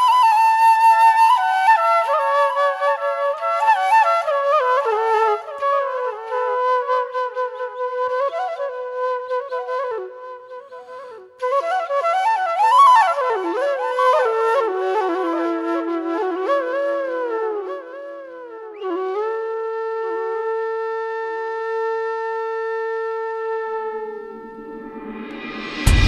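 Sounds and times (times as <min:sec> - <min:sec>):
solo flute melody: 0:00.0 - 0:26.0.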